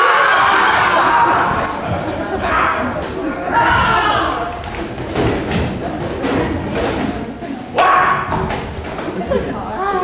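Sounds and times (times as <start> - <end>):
loud thumps on a stage: 4.6 - 7.2.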